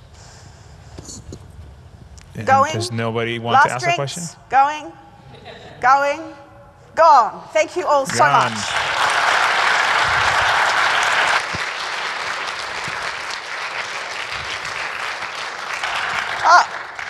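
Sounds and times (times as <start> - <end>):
audience applauding: 8.1 - 17.0.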